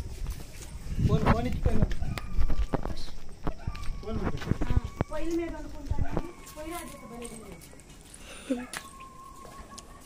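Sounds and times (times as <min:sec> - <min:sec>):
footsteps on packed earth: 0:00.0 - 0:10.0.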